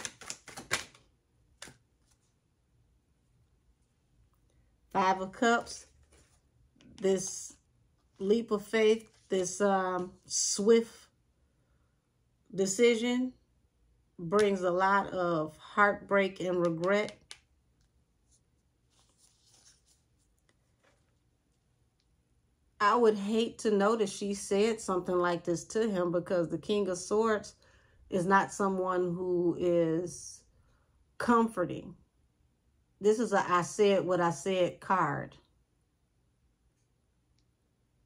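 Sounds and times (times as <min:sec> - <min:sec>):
cards being shuffled: 0:00.0 - 0:02.4, 0:05.6 - 0:07.0, 0:16.6 - 0:21.2.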